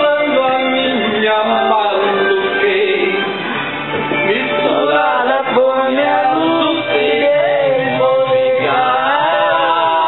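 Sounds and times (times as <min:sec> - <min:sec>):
backing track music: 0:00.0 - 0:10.0
man singing karaoke: 0:00.0 - 0:10.0.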